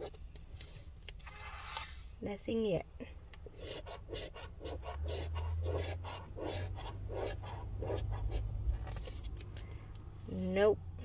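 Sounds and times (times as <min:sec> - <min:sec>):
scratch card being scraped: 0:03.5 - 0:09.3.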